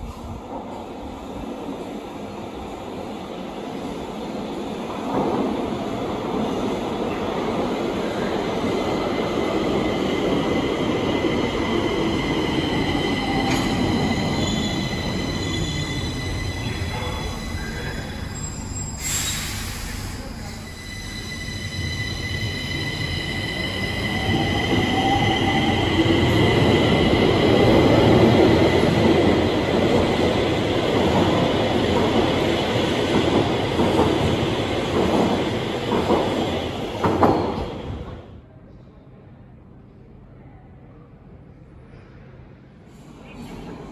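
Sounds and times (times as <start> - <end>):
metro train rumbling and braking: 0.0 - 43.9
hiss of air: 18.9 - 20.6.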